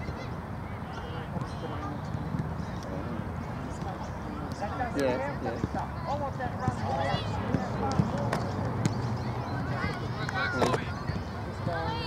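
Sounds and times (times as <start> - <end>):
distant players' voices: 0.0 - 12.0.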